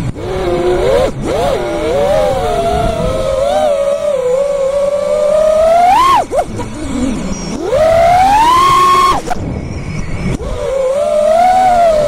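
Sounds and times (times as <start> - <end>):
quadcopter motors whining: 0.0 - 12.0.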